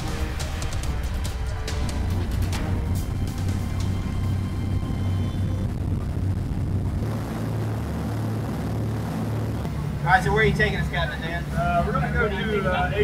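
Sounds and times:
background music: 0.0s - 11.5s
motorboat engines droning: 0.0s - 13.0s.

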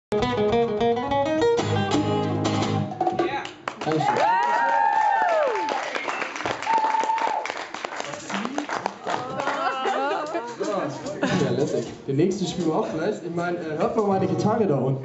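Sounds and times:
acoustic guitars strumming chords: 0.1s - 3.4s, 14.1s - 14.8s
audience cheering with whoops: 3.9s - 7.6s.

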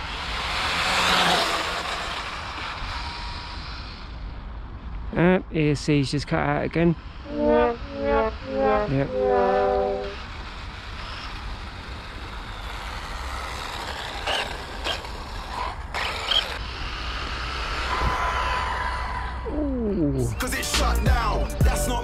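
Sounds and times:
comic musical sound effect: 7.3s - 10.2s.

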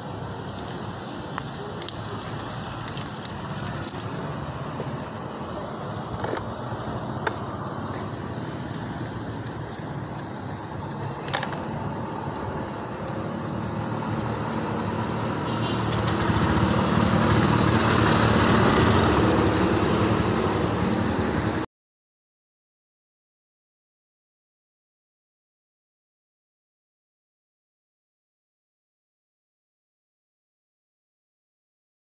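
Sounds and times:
scooter engine humming: 0.1s - 21.6s
sharp clicks: 5.8s - 16.4s.

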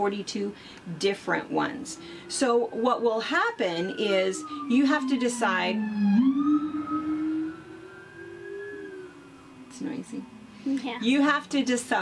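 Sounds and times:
siren wailing: 0.9s - 12.0s.

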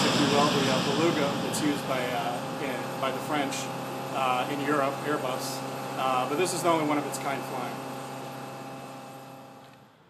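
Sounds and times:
turboprop engines droning: 0.0s - 9.8s.

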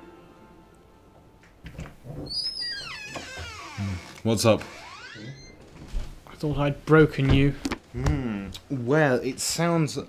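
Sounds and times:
door hinge creaking: 1.7s - 6.2s
soft thumps: 5.8s - 8.4s.

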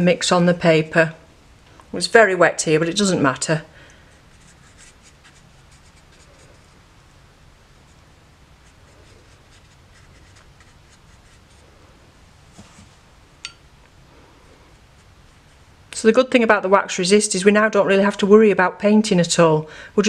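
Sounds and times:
brush scratching on wet paper: 4.1s - 6.8s, 7.8s - 11.7s, 14.6s - 15.8s.

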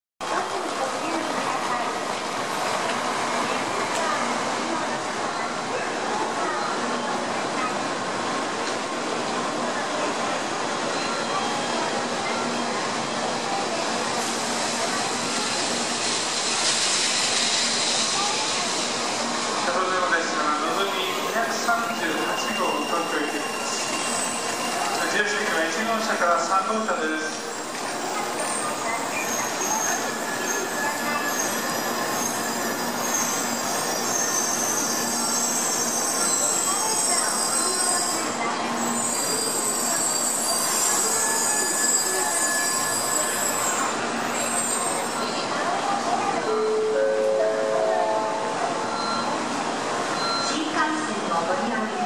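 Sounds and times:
people talking: 0.2s - 8.0s, 8.7s - 52.0s
people's voices: 0.2s - 52.0s
train pulling into station: 0.2s - 52.0s.

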